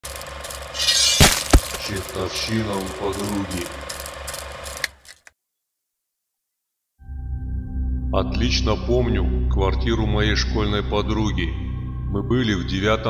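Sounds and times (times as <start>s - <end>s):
mechanical clicking: 0.0s - 5.3s
sharp hits: 0.8s - 2.2s
low pulsing drone: 7.0s - 13.0s.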